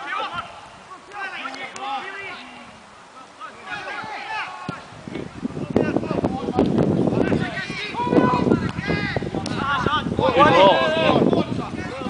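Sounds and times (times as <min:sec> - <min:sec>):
distant players shouting: 0:00.0 - 0:06.5.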